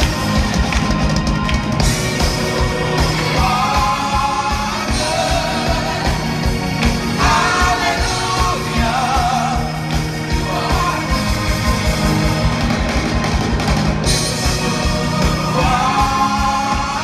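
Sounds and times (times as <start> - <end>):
live band accompaniment: 0.0 - 17.0
steady drum beat: 0.0 - 17.0
gospel choir singing in harmony: 1.8 - 13.0, 14.0 - 17.0.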